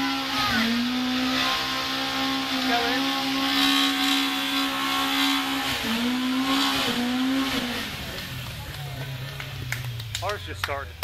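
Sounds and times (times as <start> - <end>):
car engine revving hard: 0.0 - 10.1.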